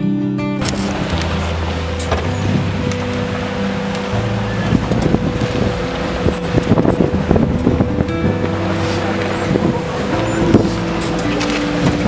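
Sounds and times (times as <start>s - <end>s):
vehicle engine running: 0.6s - 12.0s
wind noise on microphone: 0.6s - 12.0s.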